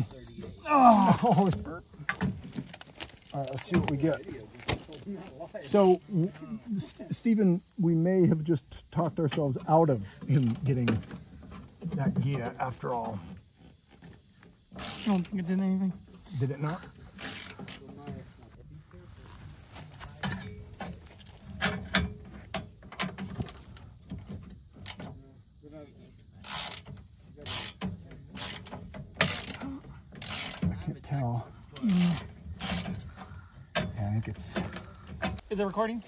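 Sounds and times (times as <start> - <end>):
ratchet wrench clicking: 14.8 - 15.4, 17.1 - 17.9, 26.4 - 29.6, 30.2 - 30.6.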